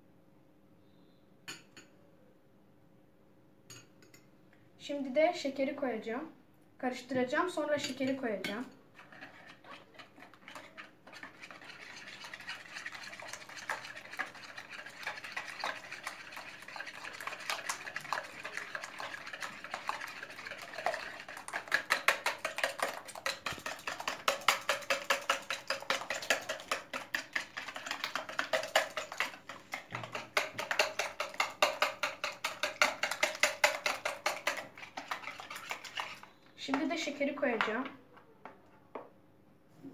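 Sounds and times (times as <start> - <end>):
whisk beating eggs in plastic bowl: 8.5 - 37.1.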